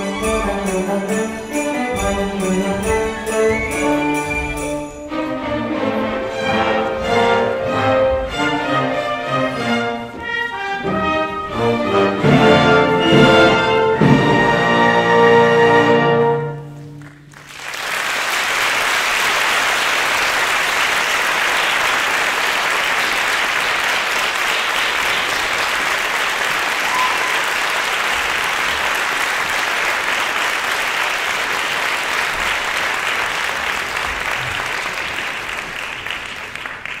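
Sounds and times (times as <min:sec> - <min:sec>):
audience applauding: 0:16.8 - 0:37.0.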